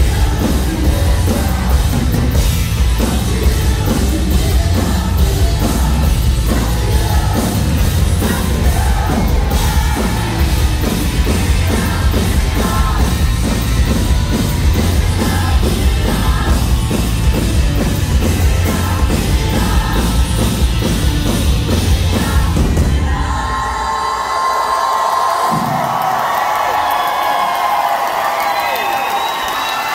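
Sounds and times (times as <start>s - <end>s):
rock band playing live: 0.0s - 23.7s
crowd cheering and screaming: 0.0s - 29.9s.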